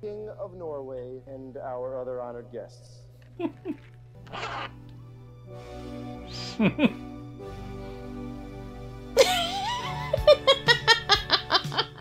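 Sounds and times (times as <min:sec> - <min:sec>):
zipper pulled: 0:03.3 - 0:05.0.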